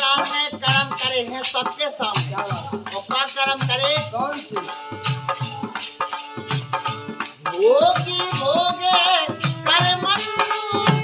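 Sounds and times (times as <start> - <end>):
man singing folk song: 0.0 - 6.1, 7.3 - 11.0
dholak drum: 0.0 - 11.0
harmonium: 0.0 - 11.0.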